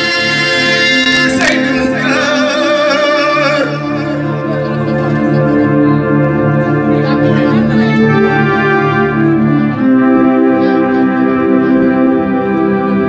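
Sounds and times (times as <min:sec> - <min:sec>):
electronic keyboard chords: 0:00.0 - 0:13.0.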